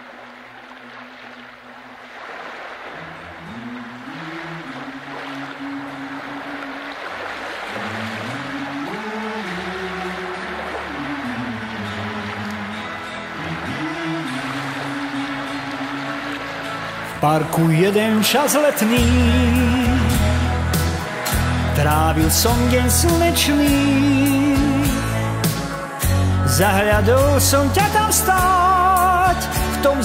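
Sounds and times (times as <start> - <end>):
keyboard sustained chords: 8.4 - 30.0.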